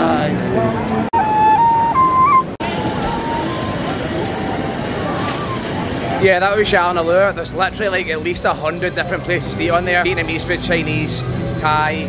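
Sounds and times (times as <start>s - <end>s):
crowded market noise: 0.0s - 12.0s
people talking: 2.6s - 12.0s.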